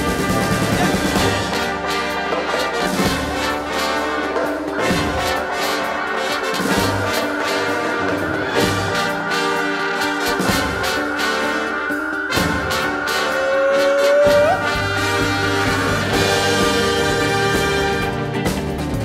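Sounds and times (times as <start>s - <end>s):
trumpets playing melody: 0.0s - 18.4s
orchestral woodwinds and horns: 0.0s - 18.7s
drum kit with cymbals: 0.0s - 19.0s.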